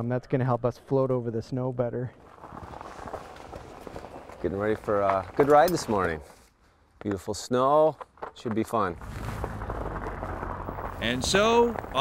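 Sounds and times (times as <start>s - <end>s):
bike tyres rolling on snow: 2.1s - 6.5s, 7.1s - 12.0s.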